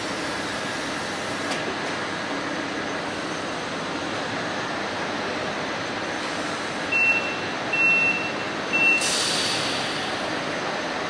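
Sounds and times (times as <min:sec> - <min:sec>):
stationary train humming: 0:00.0 - 0:11.0
high-pitched door warning beeps: 0:06.9 - 0:09.2.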